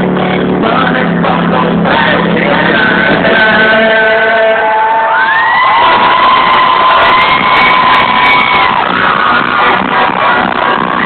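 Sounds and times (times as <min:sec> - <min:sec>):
loud distorted live concert music: 0:00.0 - 0:11.0.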